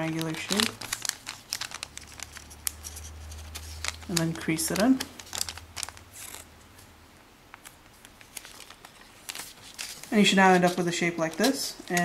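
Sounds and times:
paper creasing and rustling: 0.0 - 6.9, 7.5 - 12.0.

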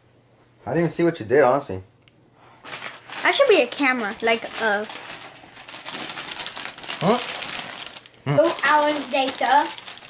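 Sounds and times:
wrapping paper crinkling: 2.6 - 10.0.

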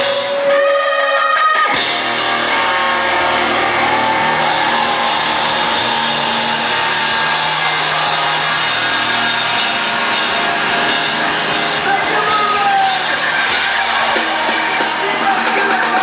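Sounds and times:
distorted electric guitars: 0.0 - 16.0
live rock band playing: 0.0 - 16.0.

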